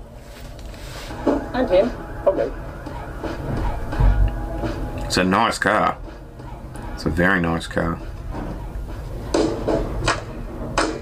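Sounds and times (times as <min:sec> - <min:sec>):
low rumble: 0:00.0 - 0:09.4
faint background music: 0:00.0 - 0:11.0.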